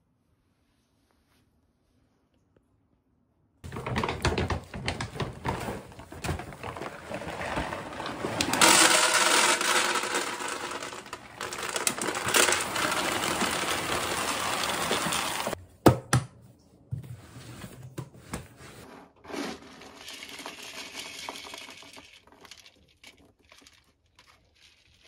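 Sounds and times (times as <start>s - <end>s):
kibble pouring into plastic container: 3.7s - 15.6s, 19.3s - 25.0s.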